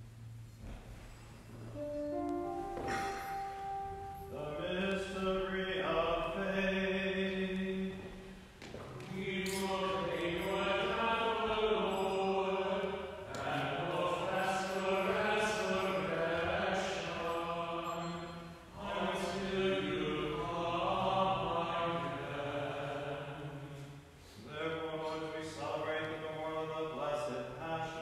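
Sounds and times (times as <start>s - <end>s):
liturgical chant: 1.7s - 28.0s.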